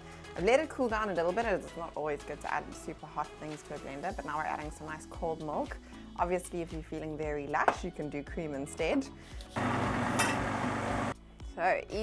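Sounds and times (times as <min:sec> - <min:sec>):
food processor motor whirring: 0:09.6 - 0:11.2.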